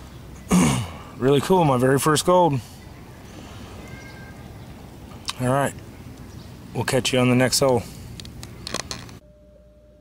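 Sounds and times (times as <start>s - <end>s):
outdoor background noise: 0.0s - 10.0s
faint steady hum: 2.6s - 10.0s.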